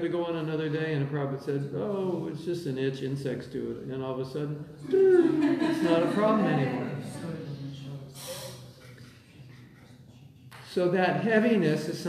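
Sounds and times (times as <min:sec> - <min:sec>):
man exhaling through nose: 0:08.2 - 0:08.8.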